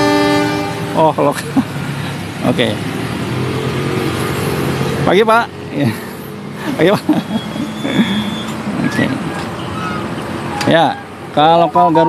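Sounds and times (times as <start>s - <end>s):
train engines humming: 0.0s - 12.0s.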